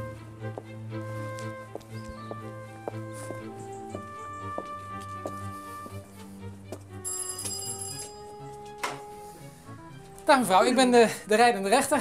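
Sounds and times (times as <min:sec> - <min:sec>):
background music: 0:00.0 - 0:12.0
electric doorbell ringing: 0:07.0 - 0:08.4.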